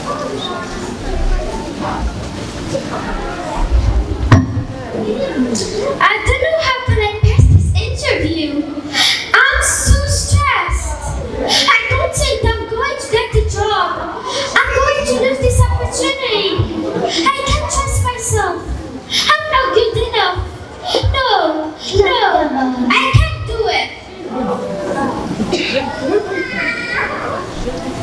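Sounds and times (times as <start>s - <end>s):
children chattering: 0.0s - 28.0s
girl speaking through a microphone: 3.6s - 24.2s.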